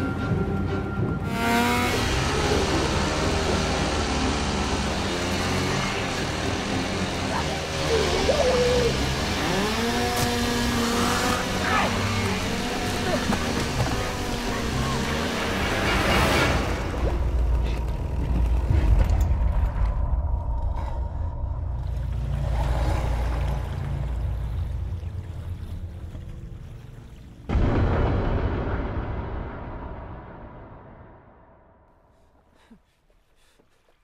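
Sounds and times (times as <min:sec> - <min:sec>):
music: 0:00.0 - 0:09.4
chainsaw revving: 0:01.3 - 0:16.3.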